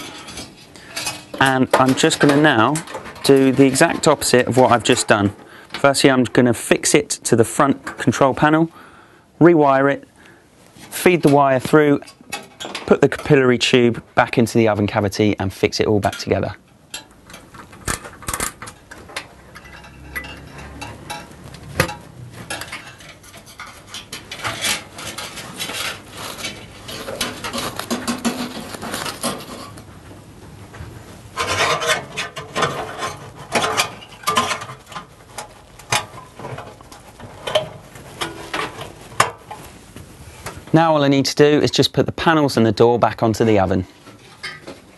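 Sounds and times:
rubbing and rustling: 0:17.4 - 0:40.8.

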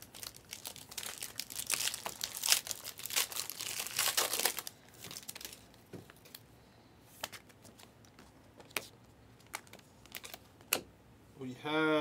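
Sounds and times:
plastic packaging crinkling: 0:00.0 - 0:06.4, 0:07.6 - 0:10.4.

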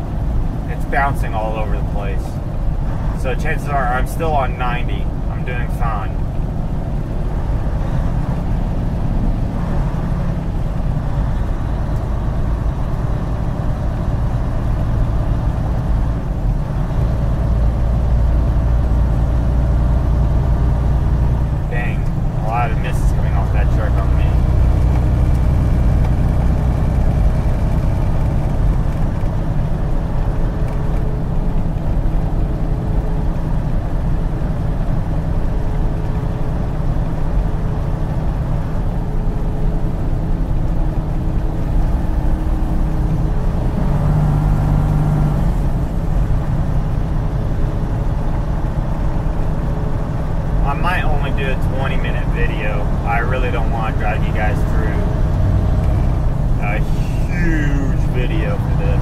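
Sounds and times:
truck diesel engine drone: 0:00.0 - 0:59.0.

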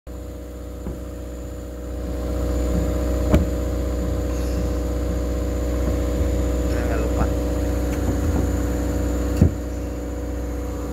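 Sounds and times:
engine humming: 0:00.1 - 0:10.9.

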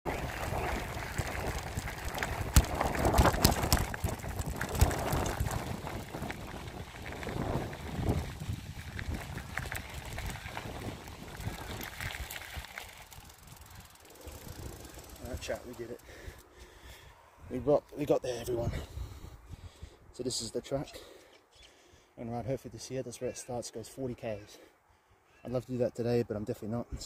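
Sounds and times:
wind on microphone: 0:00.1 - 0:12.7
bicycle on gravel path: 0:00.1 - 0:17.1
tyre and frame rattle: 0:00.6 - 0:06.3.

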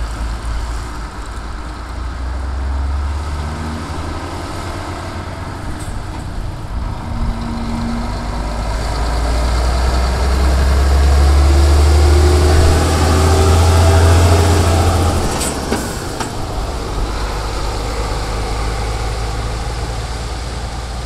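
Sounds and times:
truck diesel engine droning: 0:00.0 - 0:21.0.

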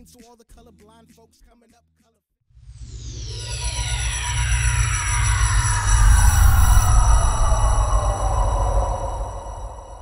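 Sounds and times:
tones sliding downward: 0:02.6 - 0:10.0
deep rumble: 0:02.8 - 0:10.0.

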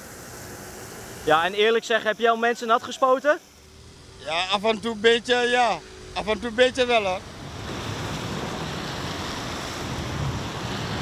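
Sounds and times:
hose water spraying on paving: 0:00.0 - 0:11.0.

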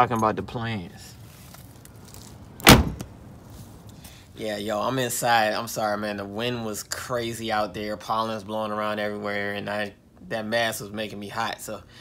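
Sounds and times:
car door shutting: 0:02.6 - 0:03.1.

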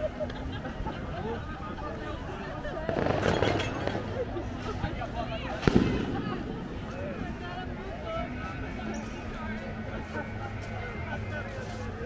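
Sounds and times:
people talking nearby: 0:00.0 - 0:12.0.

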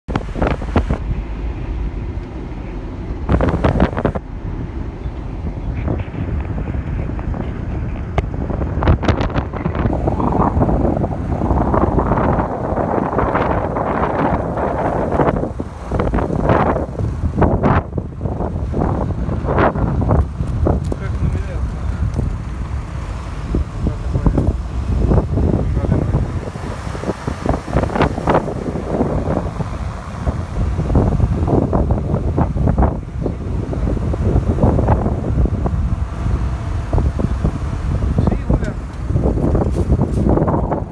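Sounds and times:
car road and engine rumble: 0:00.0 - 0:40.9
wind buffeting microphone: 0:00.1 - 0:40.9.

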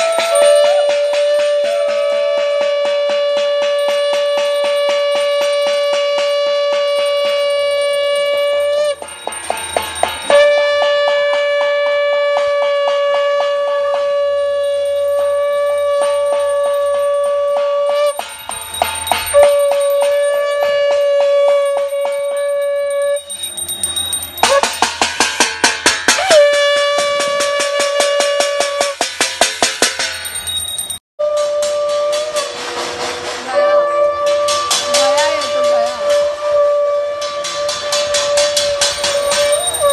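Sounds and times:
conch shell blasts: 0:00.0 - 0:39.9.

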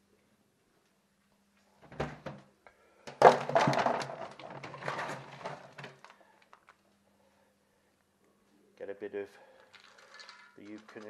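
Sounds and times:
plastic bin knocked open: 0:03.1 - 0:06.0
dry kibble rattling into metal bowl: 0:09.6 - 0:11.0.

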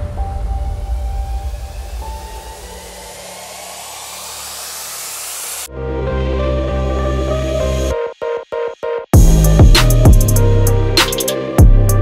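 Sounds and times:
rising noise hiss: 0:00.0 - 0:05.7
electronic dance music: 0:01.8 - 0:05.7, 0:06.4 - 0:12.0.

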